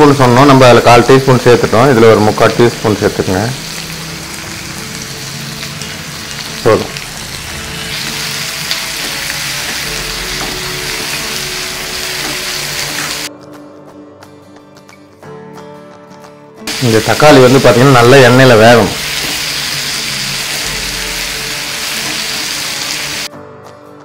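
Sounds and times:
faint background music: 0.0s - 24.0s
vegetables sizzling in oil: 0.4s - 13.3s, 16.7s - 23.3s.

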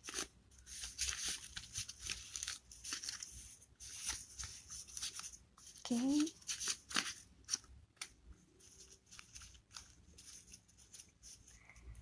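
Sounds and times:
paper cards rustling and clicking: 0.0s - 11.8s.

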